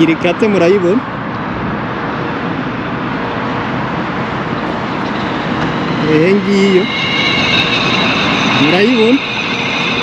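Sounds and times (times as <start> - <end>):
road traffic: 0.0 - 10.0.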